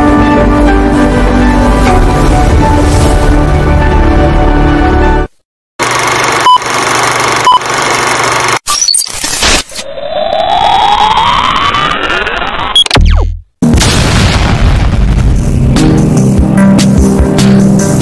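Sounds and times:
music: 0.0 - 5.4, 15.1 - 18.0
glitchy hits: 12.7 - 16.3.

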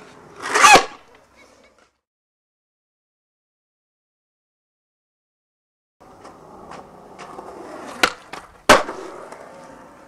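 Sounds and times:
board cracking on concrete: 0.4 - 1.2, 6.2 - 9.8
skateboard clacking on concrete: 6.1 - 10.0.

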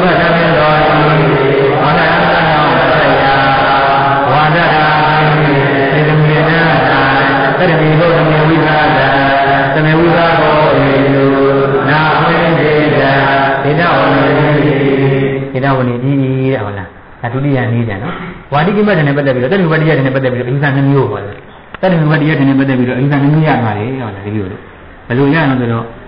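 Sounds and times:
low monotone chanting: 0.0 - 16.3.

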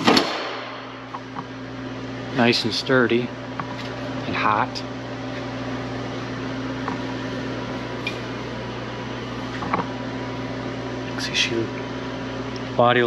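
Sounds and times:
electric motor hum: 0.0 - 13.0.

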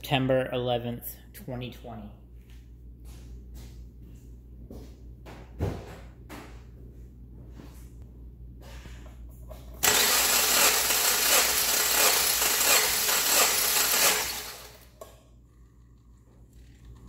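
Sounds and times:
faint knocks and shuffling: 2.3 - 9.8
engine starter cranking: 9.8 - 14.9.

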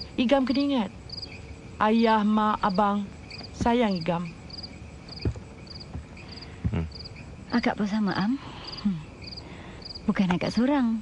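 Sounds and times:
cricket chirping: 0.0 - 11.0
man humming hmm: 6.7 - 7.0.

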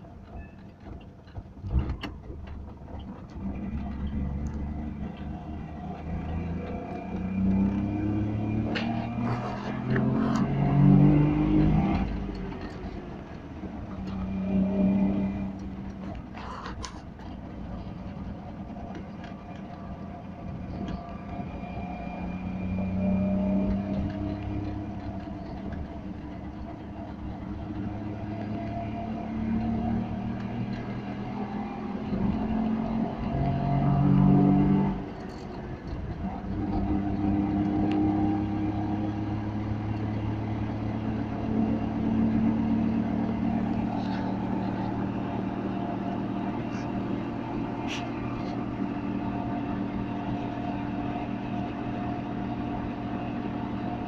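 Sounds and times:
two-stroke car engine accelerating: 0.0 - 54.0.

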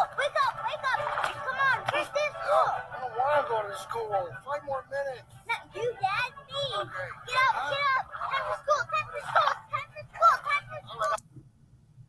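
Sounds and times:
cartoon voices shouting: 6.0 - 11.2.

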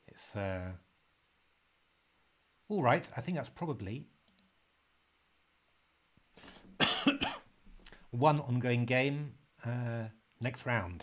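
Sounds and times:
person coughing: 6.8 - 7.5.

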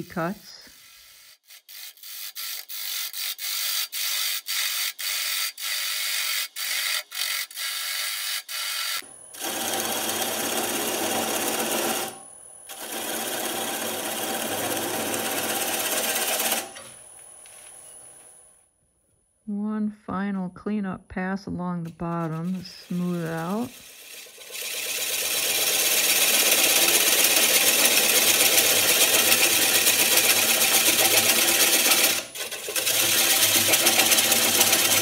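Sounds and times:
wood lathe gouge cutting: 1.5 - 16.8, 22.3 - 35.0.

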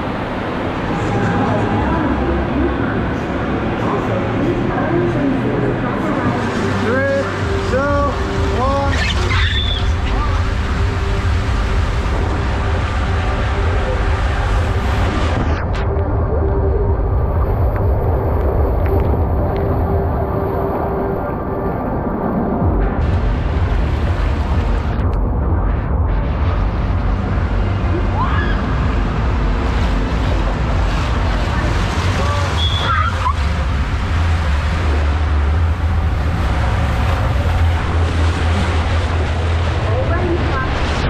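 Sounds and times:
water rushing down waterslide: 6.2 - 15.5, 27.8 - 41.0.

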